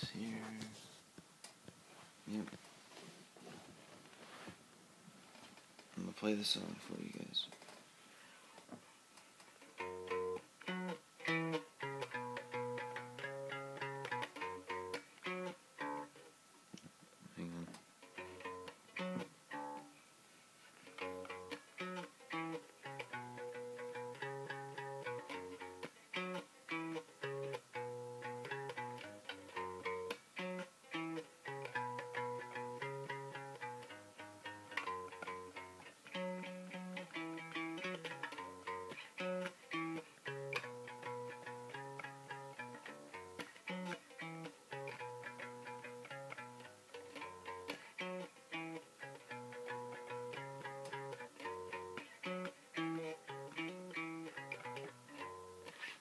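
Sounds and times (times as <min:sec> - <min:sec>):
bass guitar riff: 0:09.8 - 0:16.1, 0:18.1 - 0:19.9, 0:21.0 - 0:55.8.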